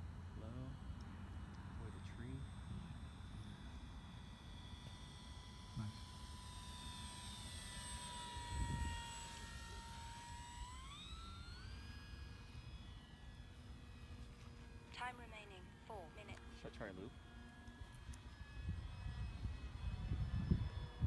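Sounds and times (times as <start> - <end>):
model plane motor whining: 0.0 - 21.0.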